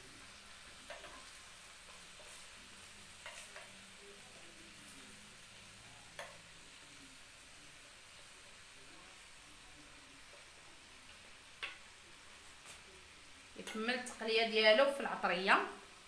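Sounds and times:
faint sizzle: 0.0 - 16.0.

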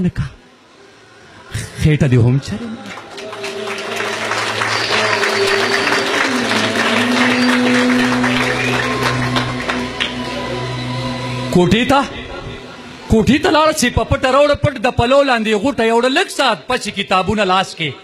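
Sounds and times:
audience applauding: 2.6 - 11.5
held musical notes: 3.1 - 13.8.

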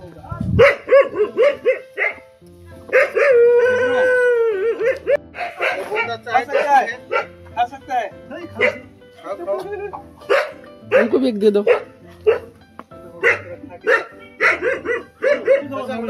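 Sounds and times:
dog barking and howling: 0.6 - 2.3, 2.9 - 7.4, 8.6 - 8.9, 10.3 - 12.5, 13.2 - 16.0.

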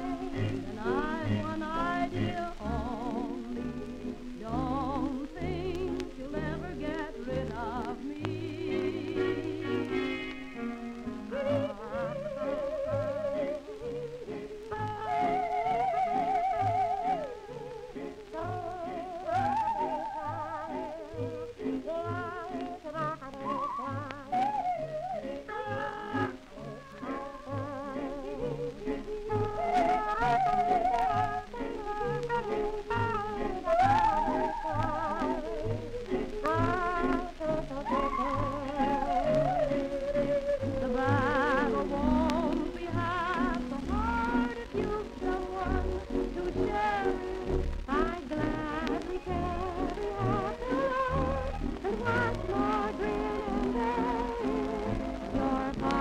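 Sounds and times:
old record of a song duet: 0.0 - 56.0
record surface noise: 0.0 - 56.0.

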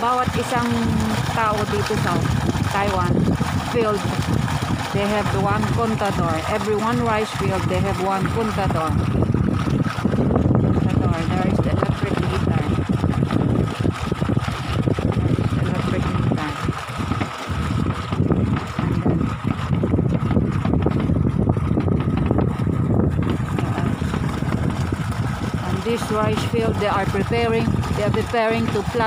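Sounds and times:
water gushing from pipe into basin: 0.0 - 29.0
wind buffeting microphone: 0.0 - 29.0.

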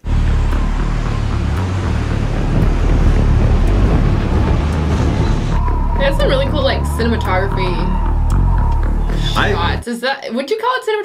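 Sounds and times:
jet engines rumbling in flight: 0.0 - 9.8.

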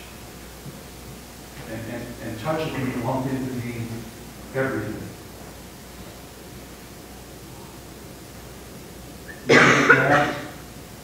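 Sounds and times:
loud cough: 9.5 - 10.5.

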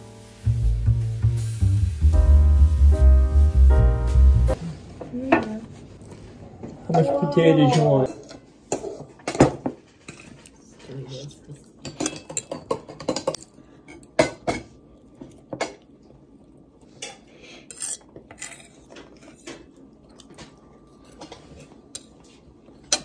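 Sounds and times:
forks clinking on plates: 11.8 - 14.6.

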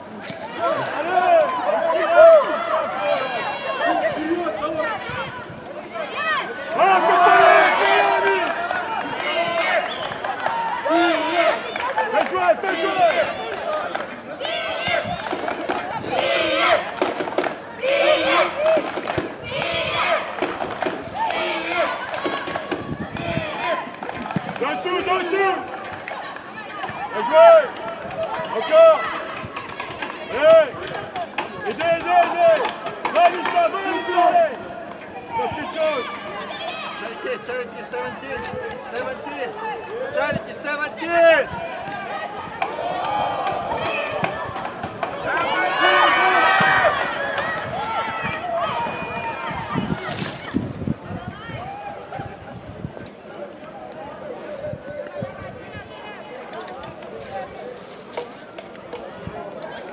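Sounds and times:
players shouting and calling: 0.0 - 59.9.

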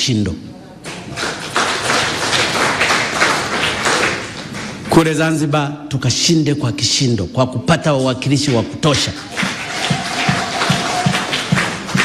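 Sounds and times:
audience applauding: 0.9 - 4.8, 8.4 - 12.0.

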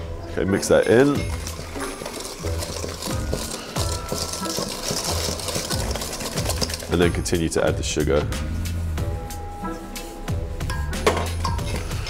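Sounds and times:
whisk stirring batter in metal bowl: 1.2 - 7.4.

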